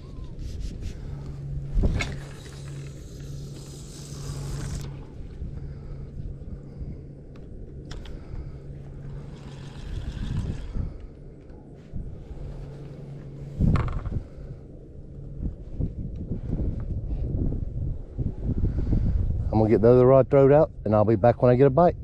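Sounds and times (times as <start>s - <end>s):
steady low hum: 0.0s - 22.0s
fishing rod and reel handling: 1.2s - 5.1s, 7.4s - 8.2s, 12.8s - 14.2s.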